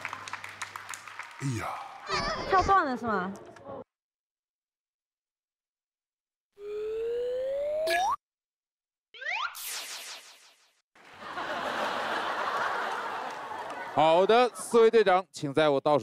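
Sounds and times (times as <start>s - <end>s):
cartoon upward sliding tone: 6.6s - 8.2s, 9.2s - 10.7s
audience laughing: 11.0s - 15.0s.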